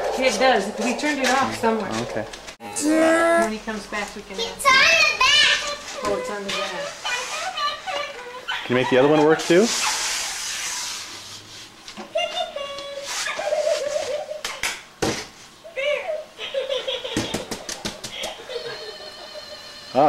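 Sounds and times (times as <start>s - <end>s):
indistinct voices: 0.0s - 8.5s
giggling: 13.2s - 14.6s, 15.8s - 19.8s.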